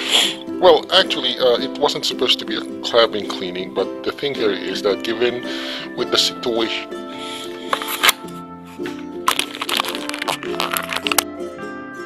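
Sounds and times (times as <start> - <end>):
background music: 0.0 - 12.0
camera handling rustling: 7.7 - 11.3.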